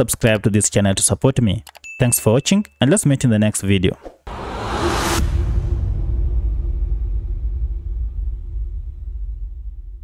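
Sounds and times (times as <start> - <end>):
deep bass rumble: 4.3 - 10.0.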